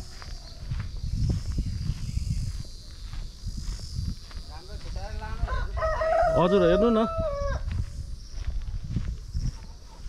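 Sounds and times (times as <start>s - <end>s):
rooster crowing: 5.3s - 7.7s.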